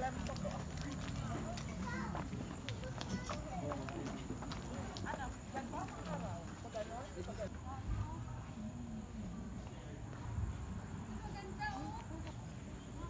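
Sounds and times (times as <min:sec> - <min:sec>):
footsteps: 0:00.0 - 0:08.8.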